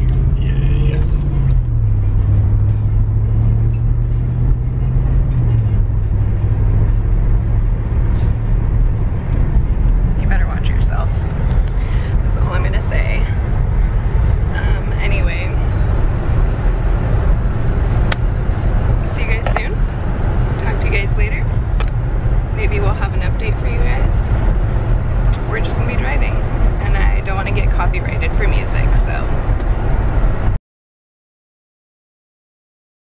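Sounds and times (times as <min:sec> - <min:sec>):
voices: 0:00.0 - 0:01.6, 0:10.2 - 0:11.3, 0:12.3 - 0:13.4, 0:14.4 - 0:15.8, 0:19.0 - 0:19.9, 0:20.6 - 0:21.5, 0:22.6 - 0:24.4, 0:25.3 - 0:29.3
car road and engine rumble: 0:00.0 - 0:30.6.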